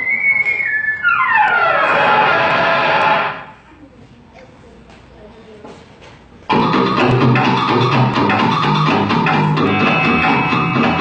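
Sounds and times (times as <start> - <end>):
falling whistle sound effect: 0.0 - 2.9
rushing noise: 1.6 - 3.6.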